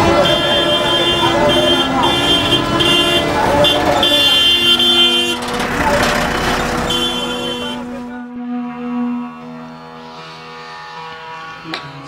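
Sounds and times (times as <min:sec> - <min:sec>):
men's voices: 0:00.0 - 0:08.4
vehicle horns honking: 0:00.0 - 0:09.7
street traffic: 0:00.0 - 0:12.0.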